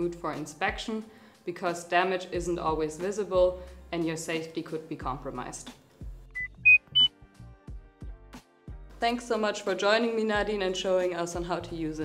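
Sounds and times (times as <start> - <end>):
rising electronic beeps: 6.4 - 7.1.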